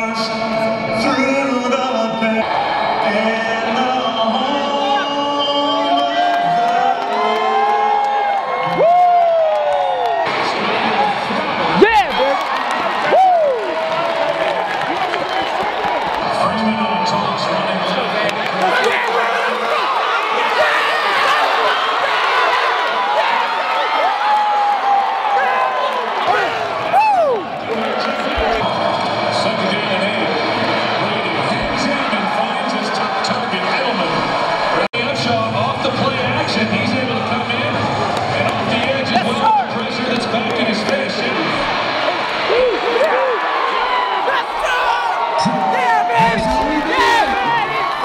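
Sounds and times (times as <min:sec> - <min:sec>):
crowd cheering and shouting: 0:00.0 - 0:48.0
loud rising and falling whoops: 0:02.4 - 0:10.3, 0:12.9 - 0:14.9, 0:22.9 - 0:27.6
crowd murmur: 0:25.3 - 0:48.0.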